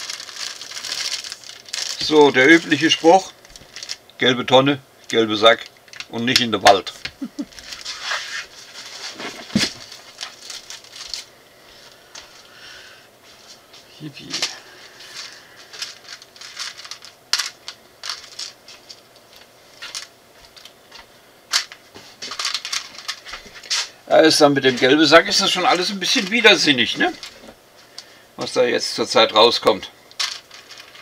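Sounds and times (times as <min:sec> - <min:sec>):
plastic bag crinkling: 0:00.0 - 0:04.3, 0:05.0 - 0:12.6, 0:14.2 - 0:28.1, 0:29.6 - 0:31.0
plastic bricks clicking and clattering: 0:15.8 - 0:18.6, 0:21.5 - 0:23.3, 0:30.1 - 0:31.0.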